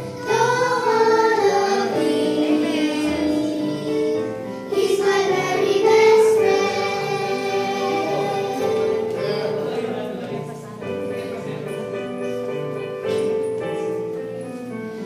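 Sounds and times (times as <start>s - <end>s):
girls singing into microphones: 0.0s - 9.7s.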